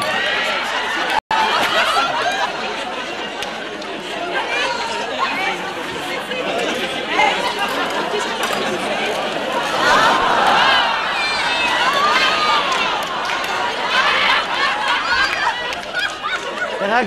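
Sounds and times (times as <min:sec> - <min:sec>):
crowd babble: 0:00.0 - 0:17.0.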